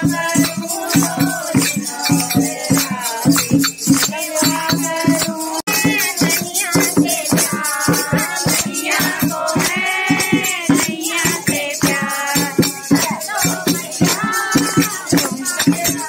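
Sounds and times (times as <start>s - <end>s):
hand drum beat: 0.0s - 16.0s
rattling percussion: 0.0s - 16.0s
women singing devotional song: 0.0s - 16.0s.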